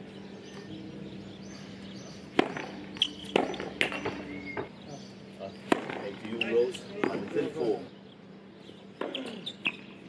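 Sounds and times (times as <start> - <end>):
tennis racket hitting ball: 2.4 - 4.2, 5.7 - 6.0.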